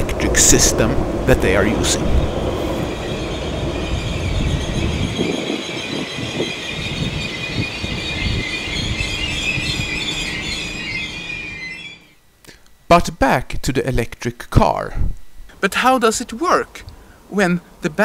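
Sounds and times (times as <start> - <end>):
train low rumble: 0.0 - 11.8
train brakes squealing: 2.8 - 12.2.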